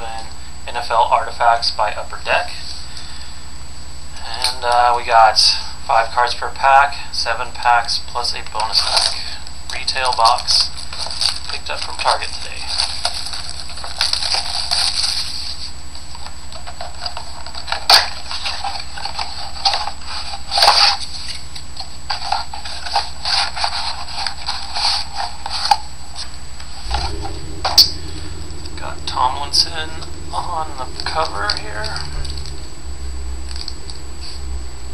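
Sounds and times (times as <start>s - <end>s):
background hum and hiss: 0.0s - 34.9s.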